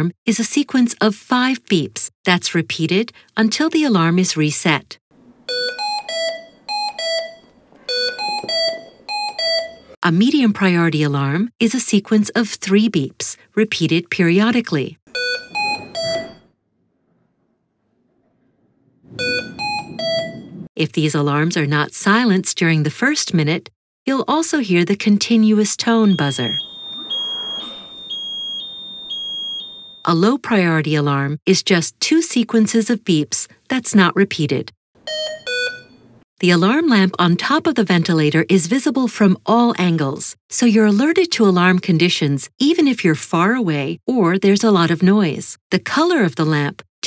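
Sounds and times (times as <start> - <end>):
ventilator alarm beeps: 5.5 - 10.0, 15.1 - 16.6, 19.2 - 20.7, 26.0 - 30.1, 35.1 - 36.2.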